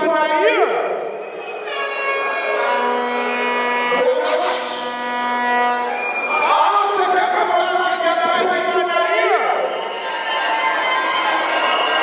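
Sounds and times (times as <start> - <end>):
crowd noise: 0.0 - 12.0
air horn blasts: 0.7 - 6.4.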